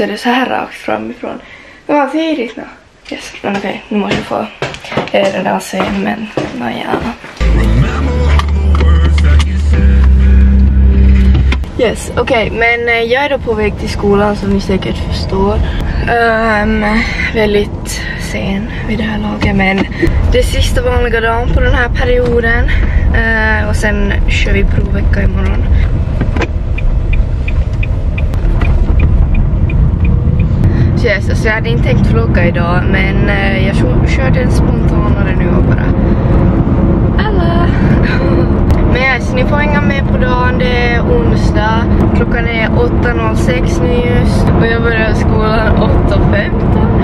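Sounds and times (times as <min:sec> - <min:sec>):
music with heavy bass: 0:07.4 - 0:11.7
car interior low rumble: 0:07.4 - 0:47.0
turn signal ticking: 0:19.1 - 0:34.4.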